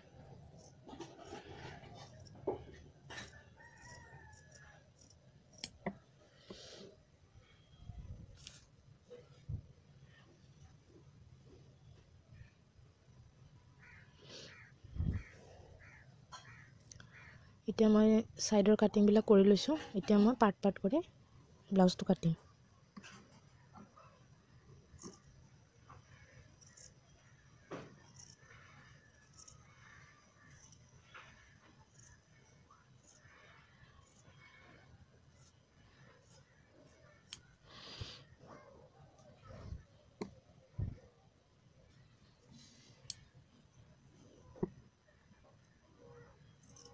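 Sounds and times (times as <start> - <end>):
scissors cutting fabric: 29.2 - 29.7, 46.6 - 46.9.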